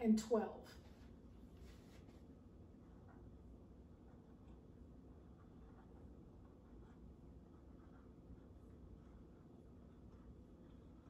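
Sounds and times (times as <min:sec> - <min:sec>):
marker writing on whiteboard: 0:02.7 - 0:11.0.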